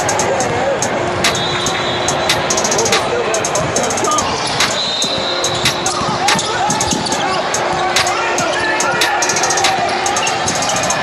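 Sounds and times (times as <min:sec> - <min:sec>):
chatter of people: 0:00.0 - 0:11.0.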